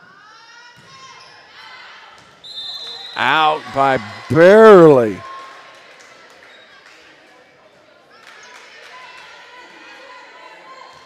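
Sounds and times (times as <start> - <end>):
referee's whistle: 2.5 - 5.2
faint crowd voices: 3.2 - 5.2.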